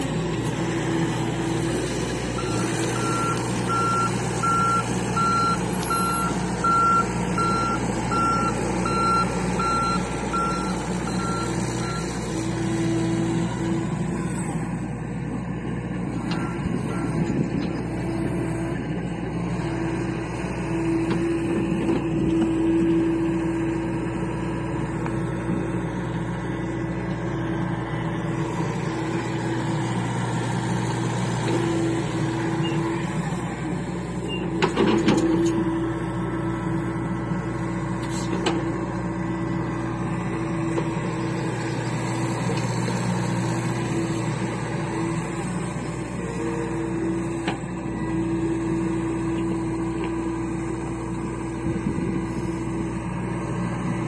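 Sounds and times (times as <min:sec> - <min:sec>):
excavator diesel engine running: 0:00.0 - 0:54.0.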